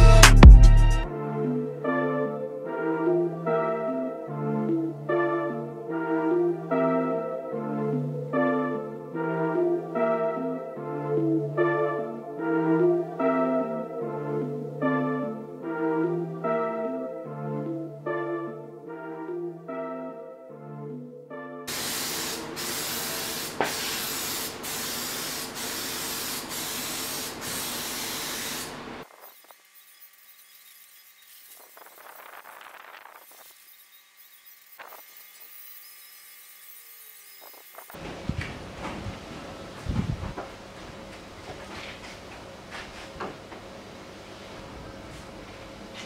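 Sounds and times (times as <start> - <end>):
aerosol spray can hissing: 21.7 - 28.8.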